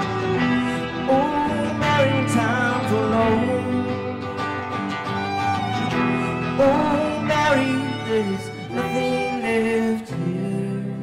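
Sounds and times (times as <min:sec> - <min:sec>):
fiddle sliding melody: 0:00.0 - 0:10.9
strummed acoustic guitar: 0:00.0 - 0:11.0.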